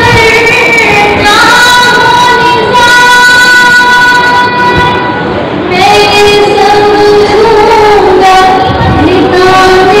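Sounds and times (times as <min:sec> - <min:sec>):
woman singing into a microphone: 0:00.0 - 0:10.0.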